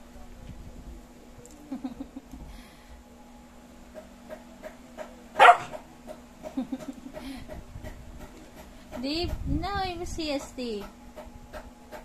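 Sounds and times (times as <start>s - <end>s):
puppy barking: 5.4s - 5.8s.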